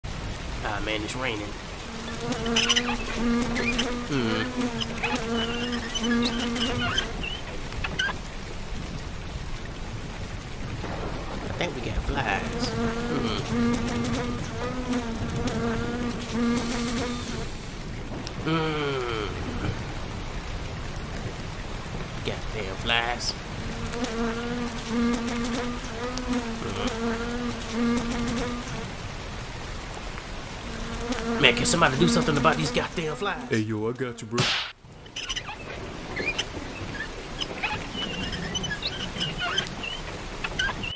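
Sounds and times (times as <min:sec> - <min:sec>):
steady rain: 0:00.0 - 0:40.9
housefly buzzing: 0:01.8 - 0:07.4, 0:12.4 - 0:17.5, 0:23.6 - 0:28.8, 0:30.6 - 0:33.5, 0:36.2 - 0:40.9.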